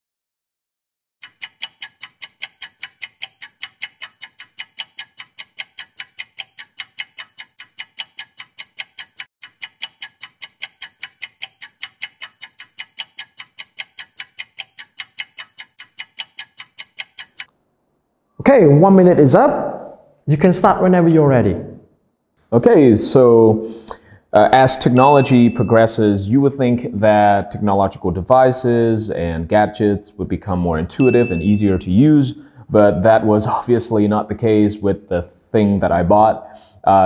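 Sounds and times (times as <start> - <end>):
clock ticking: 1.2 - 17.6, 24.8 - 26.1, 31.0 - 32.1.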